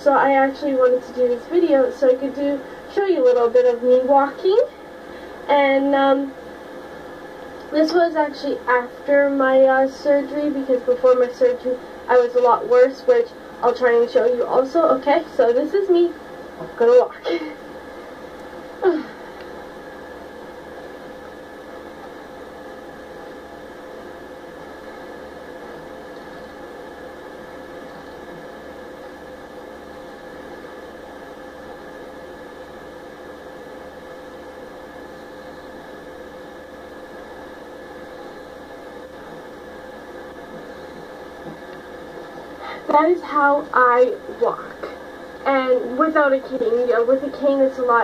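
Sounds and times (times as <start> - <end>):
room noise hiss: 0.0 - 48.0
steady hum: 0.0 - 48.0.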